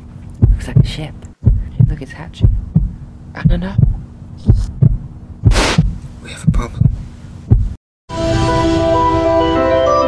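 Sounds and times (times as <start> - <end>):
low heartbeat-like thumps: 0.4 - 7.8
short hiss: 5.5 - 5.8
music with sustained chords: 8.1 - 10.0.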